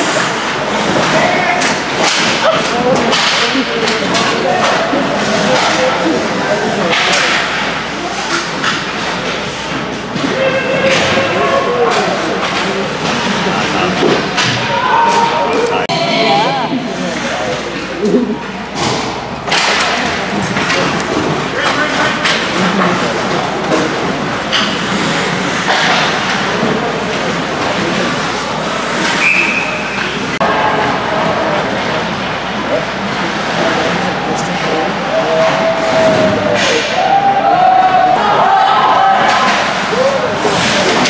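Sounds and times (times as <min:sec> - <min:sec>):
hockey sticks clacking: 0:00.0 - 0:15.7, 0:17.1 - 0:31.3, 0:39.2 - 0:41.0
crowd of spectators: 0:00.0 - 0:41.0
echoing rink ambience: 0:00.0 - 0:41.0
voices: 0:00.0 - 0:41.0.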